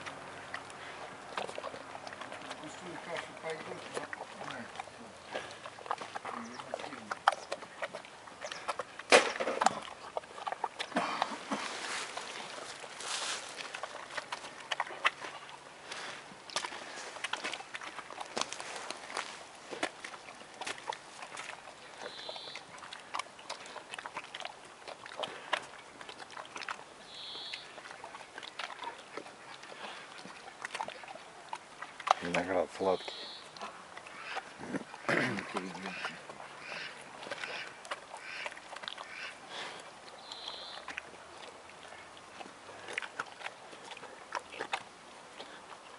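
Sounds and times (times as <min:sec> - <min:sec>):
bear chewing grapes: 0:00.0 - 0:45.9.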